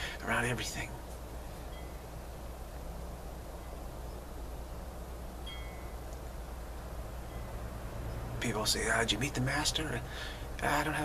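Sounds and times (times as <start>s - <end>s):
background hiss: 0.0s - 11.0s
low hum: 0.0s - 11.0s
short high ringing tone: 1.6s - 2.0s, 5.4s - 6.0s.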